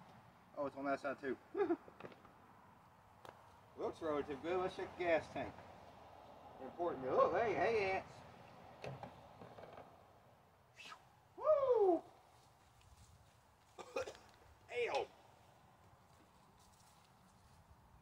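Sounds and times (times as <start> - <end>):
man's wordless exclamations: 11.4 - 12.1.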